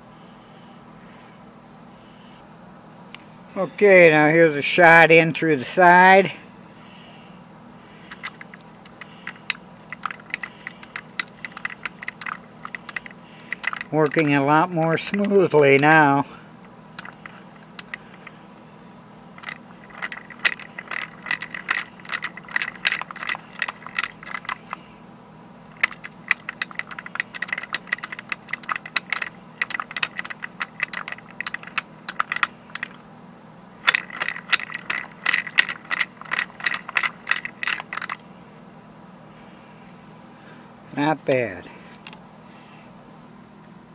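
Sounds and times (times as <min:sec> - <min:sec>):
glass marbles clicking: 0:08.1 - 0:16.0, 0:17.0 - 0:18.3, 0:19.4 - 0:24.8, 0:25.8 - 0:33.0, 0:33.9 - 0:38.2.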